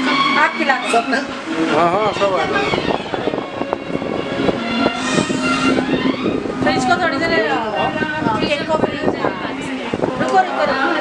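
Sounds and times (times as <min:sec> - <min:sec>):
loud music: 0:00.0 - 0:08.0.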